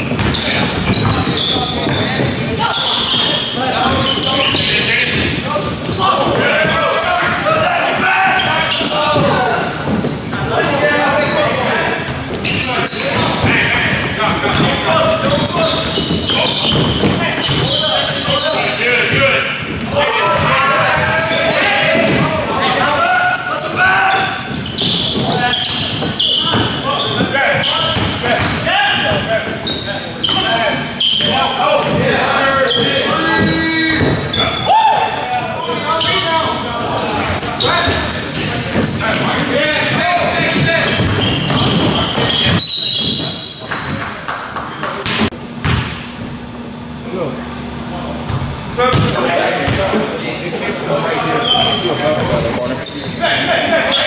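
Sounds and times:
basketball bouncing on hardwood: 0:00.1 - 0:02.5, 0:14.5 - 0:17.8, 0:28.0 - 0:28.6, 0:40.4 - 0:42.6, 0:45.0 - 0:46.0, 0:48.3 - 0:49.8.

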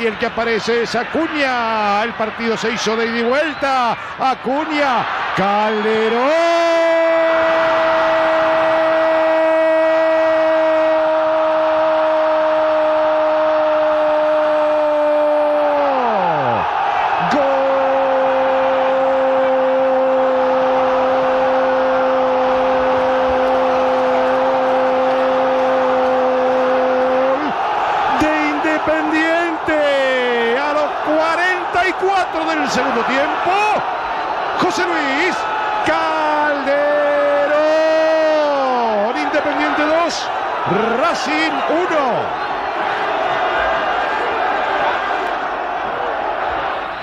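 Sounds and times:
commentator shouting goal: 0:00.0 - 0:11.3, 0:25.2 - 0:33.9, 0:34.6 - 0:42.3
stadium crowd noise: 0:00.0 - 0:47.0.

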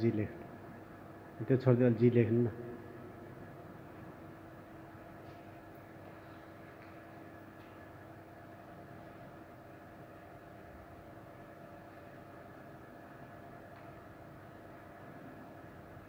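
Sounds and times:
faint steady mechanical hum: 0:00.0 - 0:16.0.

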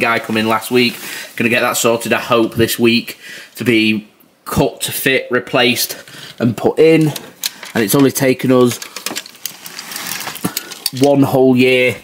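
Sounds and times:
hanging clothes rustling: 0:00.0 - 0:02.5, 0:05.6 - 0:12.0
clothes hangers clicking: 0:07.0 - 0:11.3.

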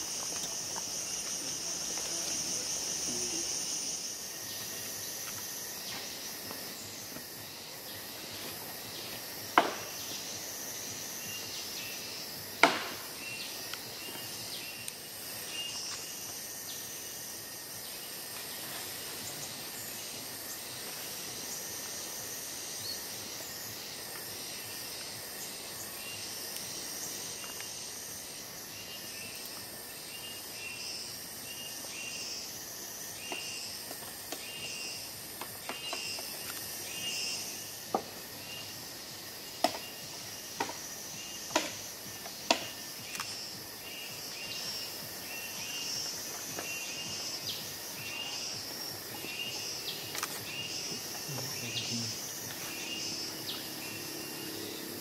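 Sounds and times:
insect chorus buzzing: 0:00.0 - 0:55.0.

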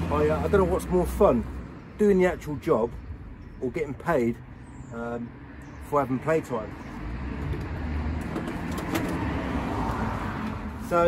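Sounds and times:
motor vehicle low rumble: 0:00.0 - 0:11.0.

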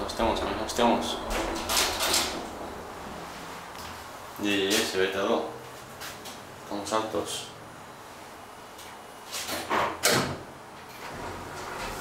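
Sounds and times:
funicular car running: 0:00.0 - 0:03.4.

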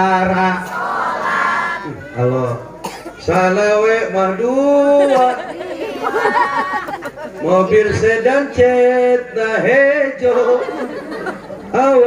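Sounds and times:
man's drawn-out voice: 0:01.8 - 0:05.6, 0:07.4 - 0:10.9.

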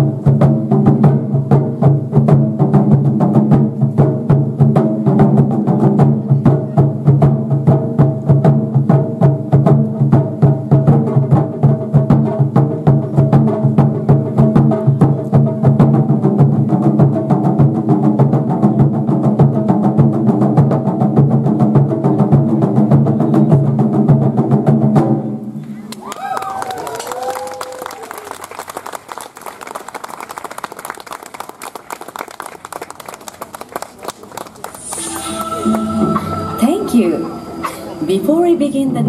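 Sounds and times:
taiko drums beaten fast: 0:00.0 - 0:25.4
people clapping: 0:25.9 - 0:36.5.

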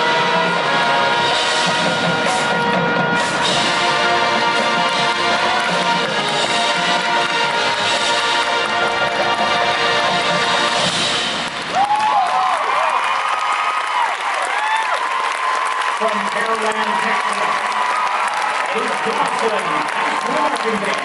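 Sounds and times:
marching band music: 0:00.0 - 0:13.4
crowd applauding and cheering: 0:00.0 - 0:21.0
high whoops: 0:11.7 - 0:16.0.

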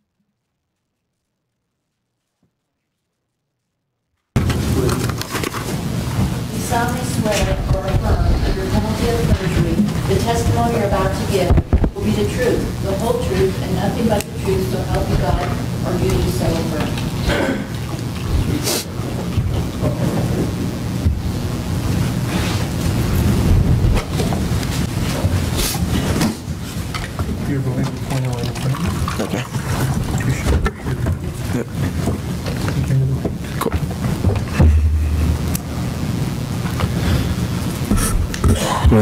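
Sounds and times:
microphone handling noise: 0:04.4 - 0:27.4, 0:29.5 - 0:39.0
loud low rumble: 0:34.5 - 0:36.7.

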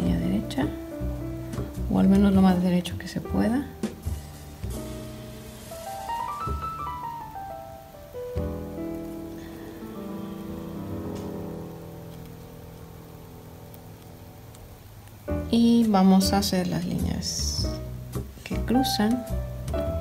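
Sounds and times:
soft background music: 0:00.0 - 0:20.0.

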